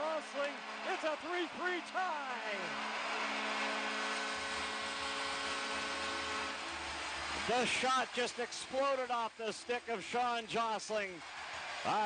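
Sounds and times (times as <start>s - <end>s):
crowd cheering: 0.0s - 8.4s, 11.2s - 12.0s
goal horn sounding: 3.2s - 6.7s.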